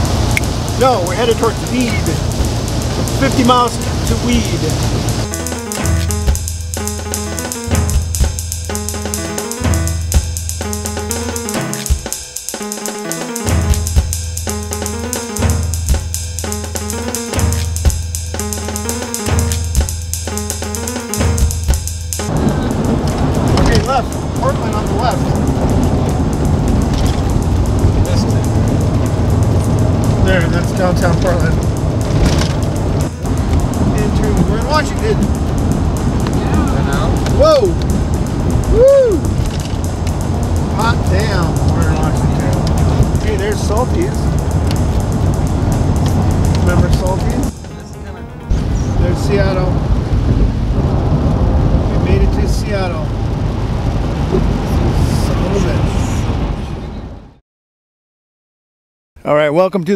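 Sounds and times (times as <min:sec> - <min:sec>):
sharp ticks: 0:00.0 - 0:48.5
music with drum beat: 0:00.0 - 0:49.4
car tyres on wet road: 0:00.0 - 0:57.3
person speaking: 0:00.7 - 0:04.9, 0:33.1 - 0:35.4, 0:36.3 - 0:37.9.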